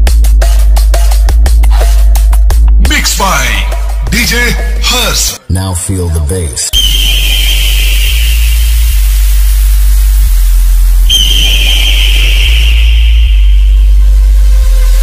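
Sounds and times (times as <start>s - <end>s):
sub-bass notes: 6.8s - 15.0s.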